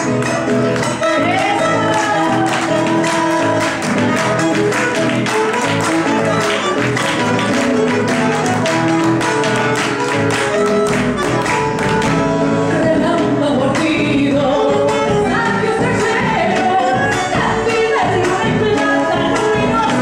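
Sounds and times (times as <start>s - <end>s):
acoustic guitar: 0.0s - 20.0s
bandoneon melody: 0.0s - 20.0s.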